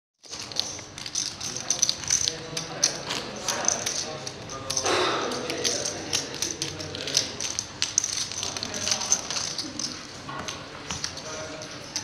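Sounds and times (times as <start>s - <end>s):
poker chips clicking: 0.3s - 10.2s.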